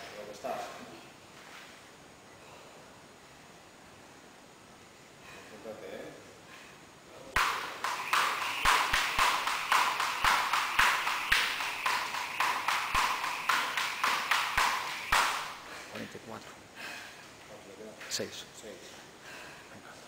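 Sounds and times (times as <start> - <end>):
jump rope slapping a mat: 7.4 - 16.1.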